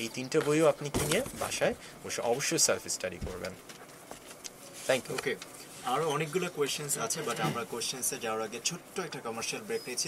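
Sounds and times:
radio talk-show speech: 4.8 - 10.0.

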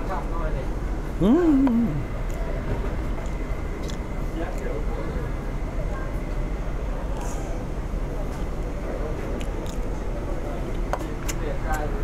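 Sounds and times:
restaurant background rumble: 0.0 - 12.0
faint voices: 1.2 - 3.1.

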